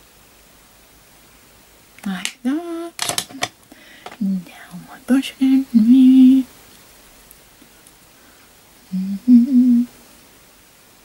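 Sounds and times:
woman whispering: 2.0s - 2.9s, 4.2s - 6.4s
woman murmuring and humming: 2.0s - 3.4s, 4.2s - 6.5s, 8.8s - 9.9s.

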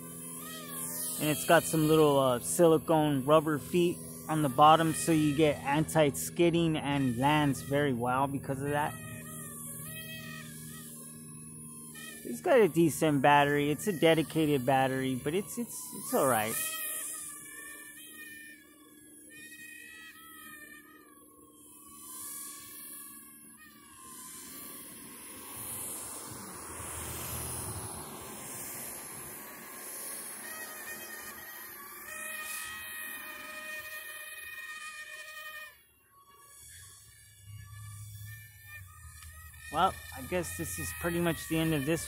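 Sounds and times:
toy drone motors whining: 0.0s - 42.0s.

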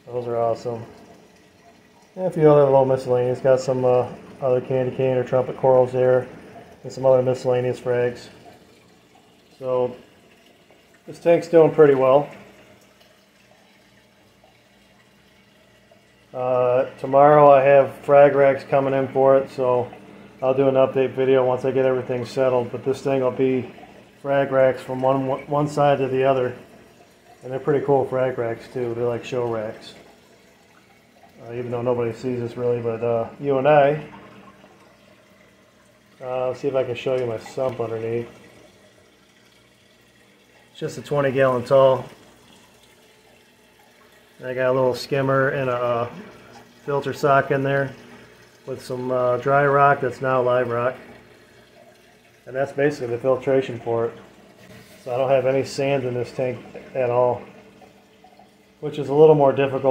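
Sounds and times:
aquarium water trickling: 0.0s - 59.9s.

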